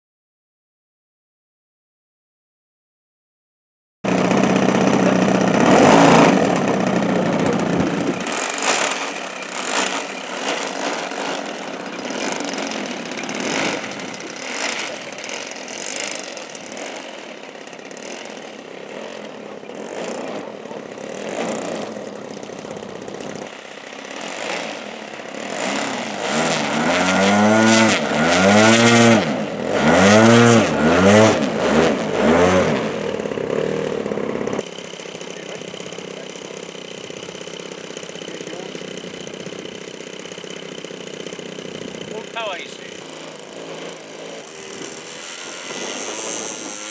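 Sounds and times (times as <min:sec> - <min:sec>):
model aircraft engine revving: 0:04.1 - 0:46.9.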